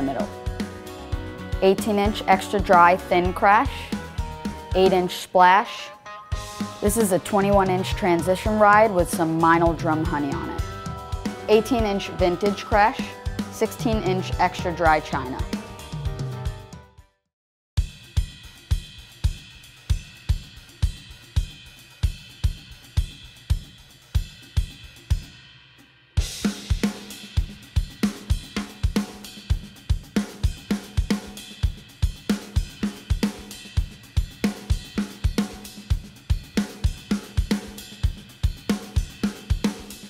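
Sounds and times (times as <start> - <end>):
bass drum hits: 15.4 - 16.8.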